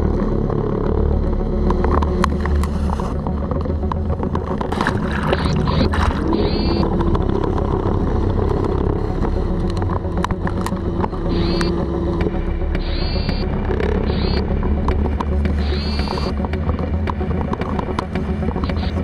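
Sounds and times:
trolling motor humming: 0.0 - 19.0.

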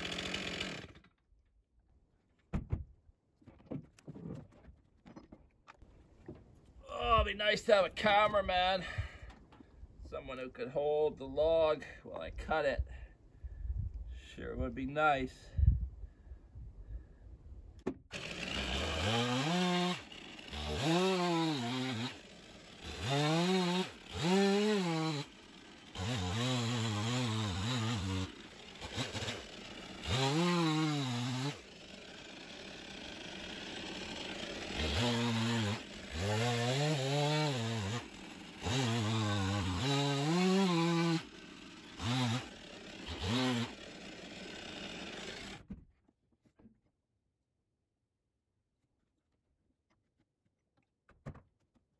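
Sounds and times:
chainsaw cutting log: 0.0 - 1.2, 17.9 - 45.8.

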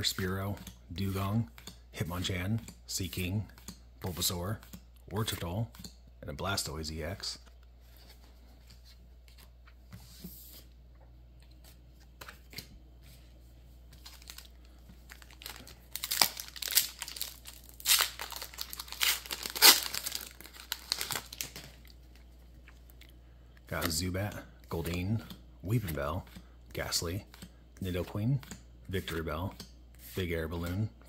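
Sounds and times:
cards clicking and rustling: 13.9 - 22.9
foil wrapper tearing and crinkling: 14.1 - 22.0.

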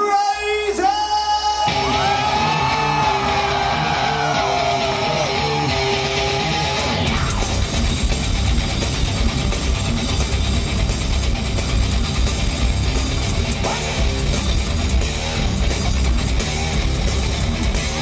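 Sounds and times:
live metal band playing: 1.0 - 18.0.

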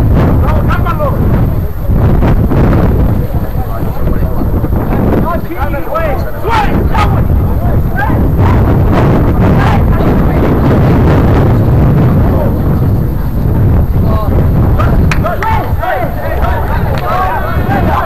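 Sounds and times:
distant shouting voices: 0.0 - 18.0
wind buffeting microphone: 0.0 - 18.0.

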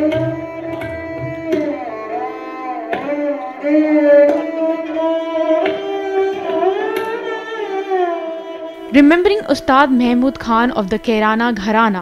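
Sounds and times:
soft tabla strokes: 0.0 - 7.5
bowed sarangi melody: 0.0 - 12.0.

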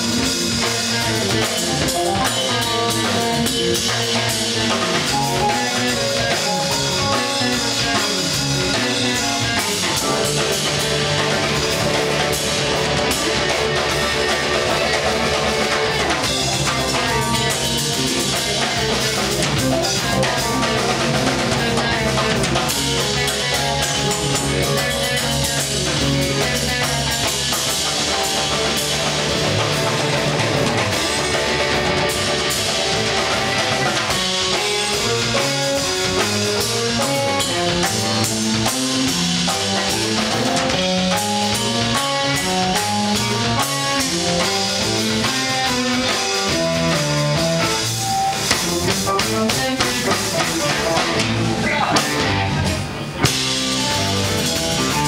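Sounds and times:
drum kit: 0.0 - 55.0
electric guitar: 0.0 - 55.0
keyboard: 0.0 - 55.0.

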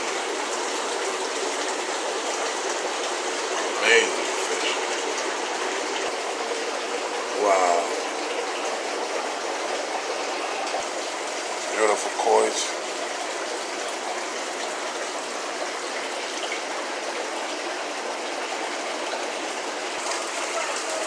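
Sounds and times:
running water from aquarium filter: 0.0 - 21.0.

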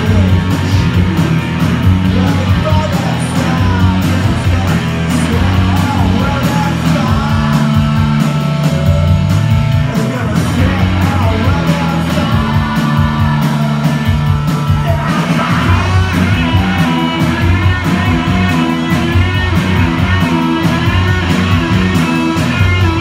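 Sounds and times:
bass guitar: 0.0 - 23.0
drum kit beat: 0.0 - 23.0
electric guitars: 0.0 - 23.0.

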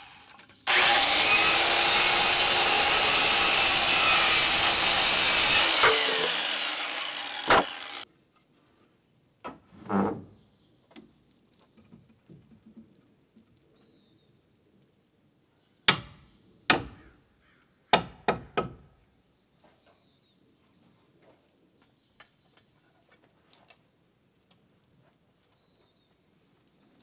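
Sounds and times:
hammer striking nail into wood: 15.9 - 17.0, 17.9 - 18.8.

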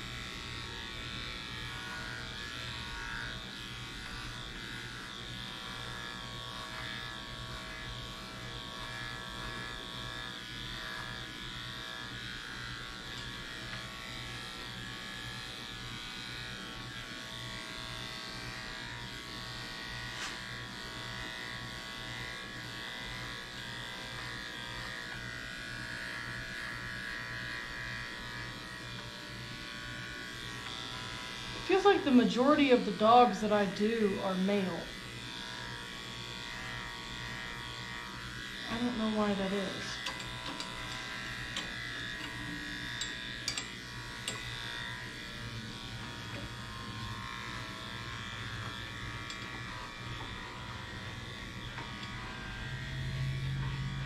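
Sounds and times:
electric clippers trimming hair: 0.0 - 54.0.

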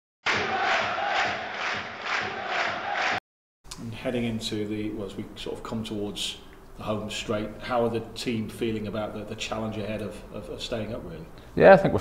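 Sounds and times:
stadium crowd chanting: 0.3 - 3.2.

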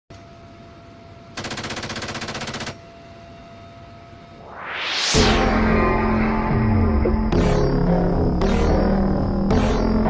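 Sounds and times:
machine gun burst: 1.4 - 2.8.

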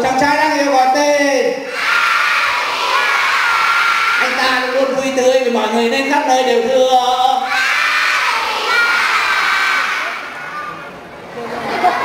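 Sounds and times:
children shouting together: 1.6 - 4.4, 7.4 - 10.9.

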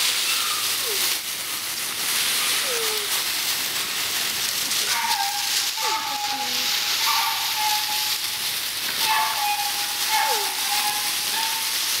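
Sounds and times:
dry leaves crackling and rustling: 0.0 - 12.0
puppies high calls: 0.1 - 1.2, 4.7 - 8.3, 8.9 - 12.0.

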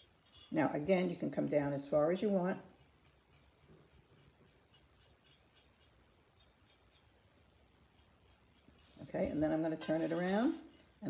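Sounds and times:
dry paintbrush scratching ceramic: 0.0 - 1.1, 2.1 - 7.2, 7.8 - 10.8.

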